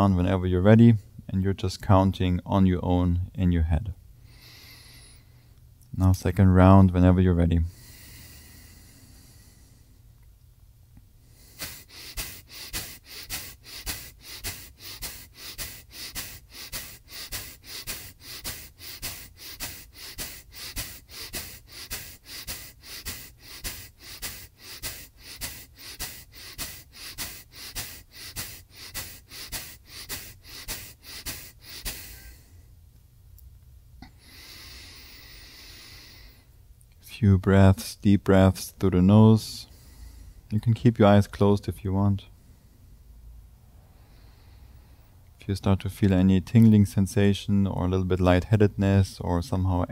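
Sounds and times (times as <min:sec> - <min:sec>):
soft slow breathing: 0:04.2 - 0:05.6, 0:07.6 - 0:10.2, 0:11.2 - 0:32.8, 0:34.0 - 0:36.6, 0:39.5 - 0:40.6, 0:42.2 - 0:45.4
forceful nasal exhales: 0:07.7 - 0:10.0, 0:11.2 - 0:32.6, 0:34.0 - 0:36.5.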